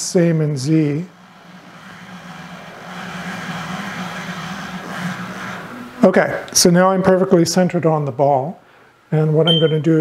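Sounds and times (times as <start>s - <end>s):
axis drive whirring: 0.0s - 6.6s
machine low hum: 0.0s - 10.0s.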